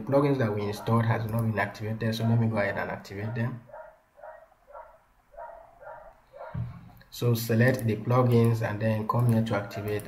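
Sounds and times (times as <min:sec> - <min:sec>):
dog barking faintly: 0:00.7 - 0:01.3, 0:02.1 - 0:06.7.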